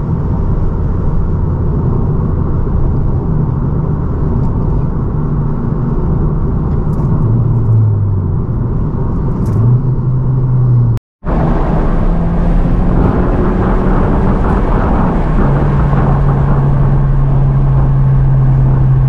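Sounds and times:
low engine drone: 0.0 - 19.0
road and wind noise in car: 0.0 - 19.0.

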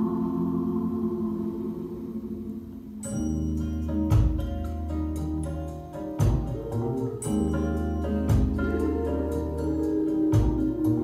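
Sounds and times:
music from loudspeakers: 0.0 - 11.0.

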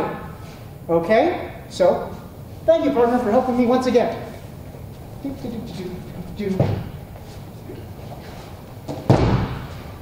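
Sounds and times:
heavy dummy thudding down: 9.0 - 10.0.

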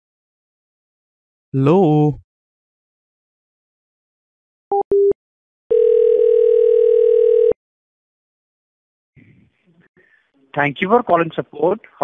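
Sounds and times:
telephone ringback tone: 4.8 - 7.6.

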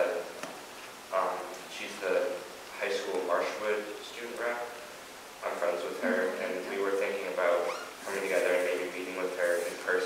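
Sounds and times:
person speaking: 1.1 - 10.0
brief high squeak: 7.6 - 8.0.

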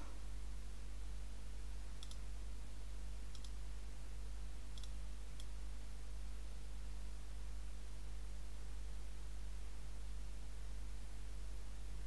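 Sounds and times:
low electrical hum: 0.0 - 12.0
computer mouse clicks: 2.0 - 2.2, 3.3 - 3.6, 4.7 - 5.6.

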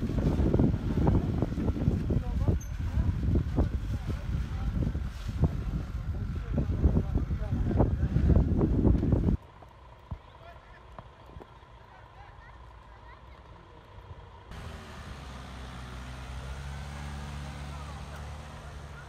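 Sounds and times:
van engine humming: 5.8 - 19.0.

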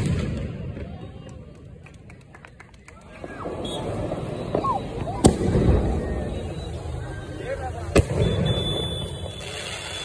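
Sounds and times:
firework bang: 0.0 - 1.0, 3.2 - 6.4, 7.9 - 10.0.

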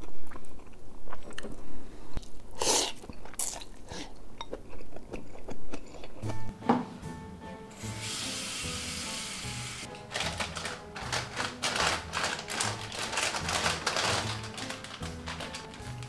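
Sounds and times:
plastic packets crinkling: 9.9 - 16.0.

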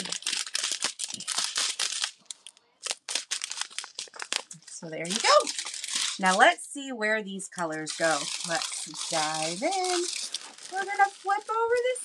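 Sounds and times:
plastic bags crinkling: 0.0 - 6.6, 7.7 - 12.0.

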